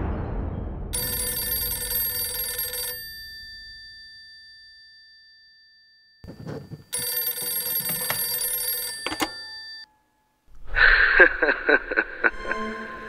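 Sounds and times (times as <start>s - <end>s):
low rumble with knocks: 0.0s - 1.0s
bright bell-like ringing: 1.0s - 10.4s.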